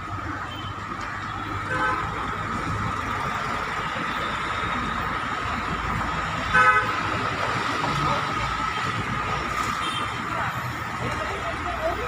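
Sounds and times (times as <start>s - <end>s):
road traffic: 0.0s - 12.0s
vehicle horn toot: 6.5s - 6.9s.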